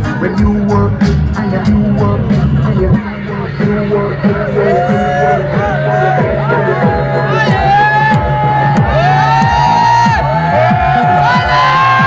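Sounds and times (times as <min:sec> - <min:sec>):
electronic dance music: 0:00.0 - 0:12.0
crowd shouting: 0:03.8 - 0:12.0.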